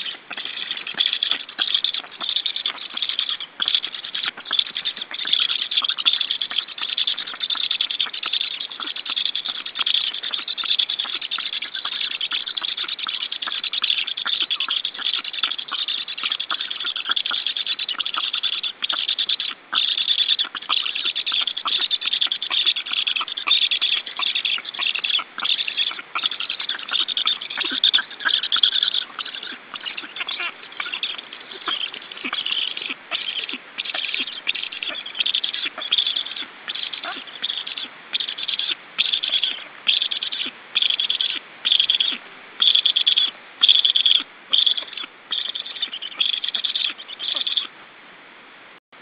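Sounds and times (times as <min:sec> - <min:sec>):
nestlings rasping chatter: 0:00.0 - 0:47.7.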